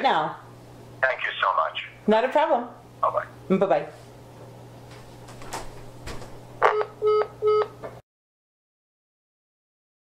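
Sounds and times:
telephone hang-up click: 6.6 - 8.0
short beeps: 6.7 - 7.8.

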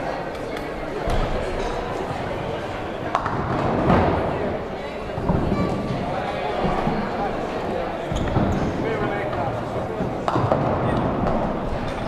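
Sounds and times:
voices in large hall: 0.0 - 12.0.

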